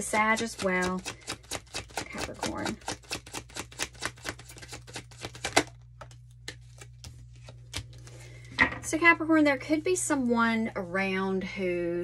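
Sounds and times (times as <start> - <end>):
cards being shuffled: 0.4 - 8.5.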